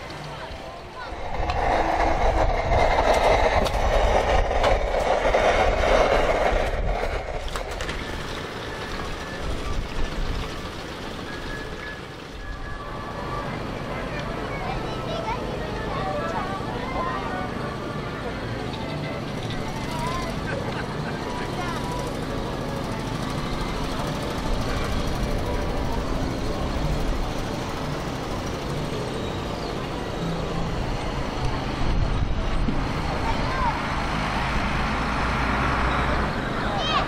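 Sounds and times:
indistinct voices: 0.0s - 8.1s
low rumble of vehicles: 0.0s - 37.0s.

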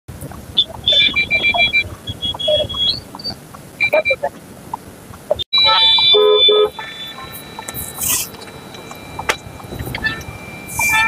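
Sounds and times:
high-pitched vehicle horn beeping: 0.6s - 3.0s, 5.5s - 11.0s.

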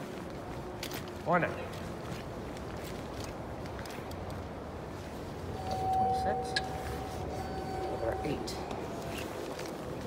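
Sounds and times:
steady background hum: 0.0s - 10.0s
steady high tone: 5.5s - 9.4s.

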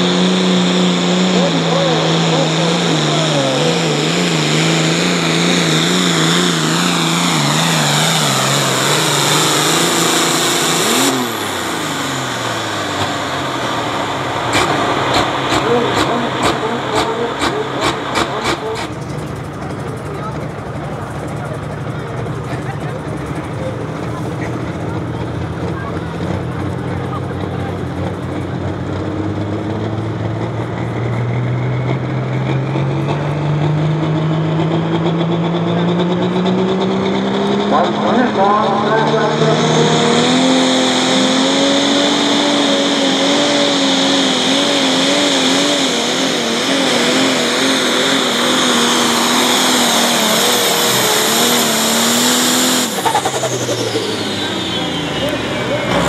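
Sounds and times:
tractor engine revving: 0.0s - 56.0s.

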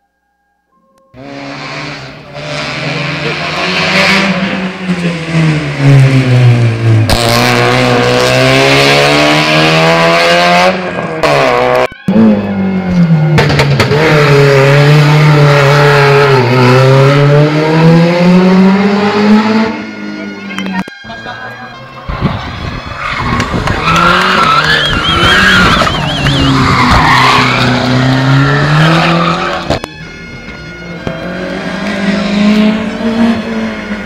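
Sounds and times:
rally car engine revving: 1.2s - 20.8s, 22.1s - 34.0s.

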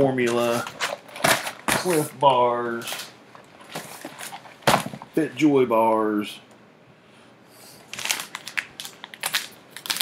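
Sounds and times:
plastic pack crinkling: 0.2s - 5.0s, 7.9s - 10.0s.

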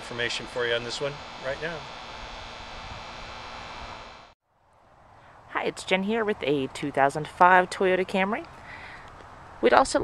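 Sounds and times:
faint hum: 0.0s - 4.4s
low hiss: 0.0s - 5.5s.

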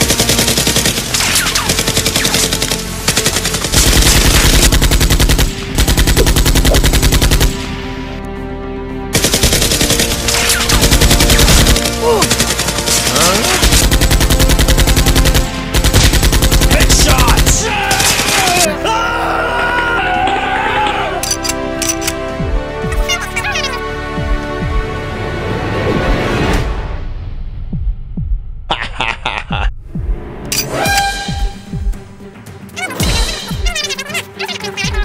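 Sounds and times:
background music: 0.0s - 35.0s
automatic gunfire bursts: 9.2s - 17.5s.

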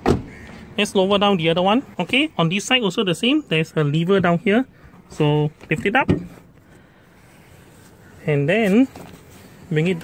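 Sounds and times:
faint steady background noise: 0.0s - 10.0s.

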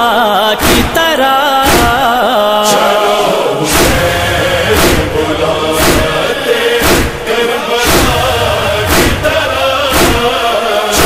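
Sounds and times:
heavy chest-beating thumps: 0.6s - 1.0s, 1.6s - 2.0s, 3.7s - 11.0s.

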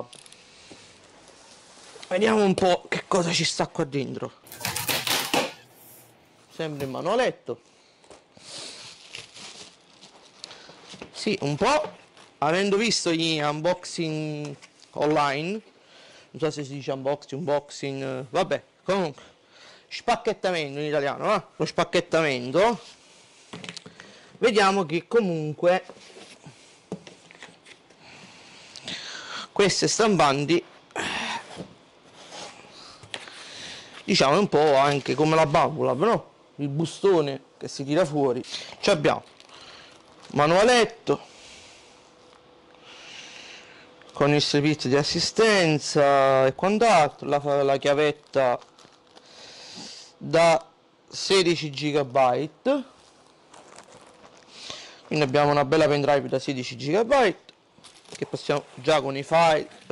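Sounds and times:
cardboard packing handled: 8.7s - 11.2s, 53.0s - 54.5s
quiet even hiss: 44.0s - 59.9s.

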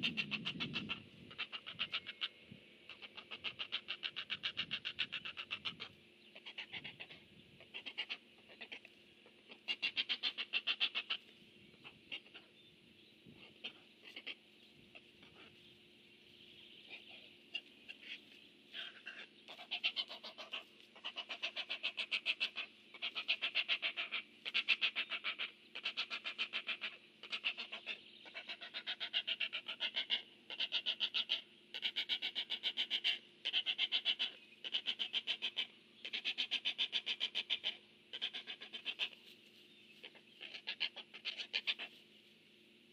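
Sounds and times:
heron nestling begging chatter: 0.0s - 12.6s, 13.4s - 15.6s, 16.8s - 39.2s, 40.0s - 41.9s.

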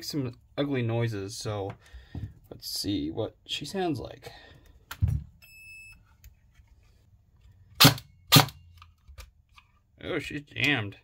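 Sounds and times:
airsoft gun shots: 7.8s - 8.6s.

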